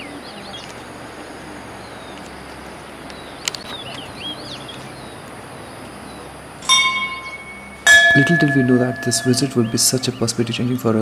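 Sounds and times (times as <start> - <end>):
outdoor background hiss: 0.0 - 11.0
bird chirps: 3.1 - 10.9
bell-like chime ringing: 6.6 - 10.0.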